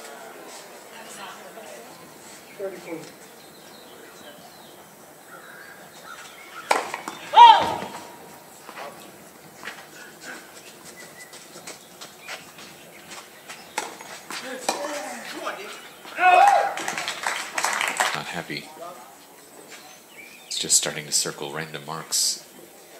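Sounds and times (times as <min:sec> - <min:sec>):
low crowd and court noise: 0:00.0 - 0:22.9
tennis ball hit: 0:06.6 - 0:08.3, 0:13.7 - 0:14.9
person shouting a call: 0:07.2 - 0:08.2, 0:16.1 - 0:16.8.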